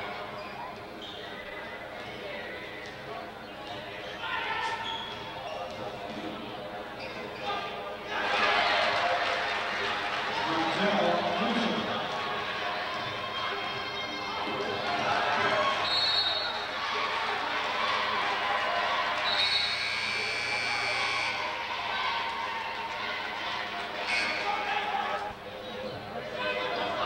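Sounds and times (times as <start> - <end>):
spectators chattering: 0.0 - 27.0.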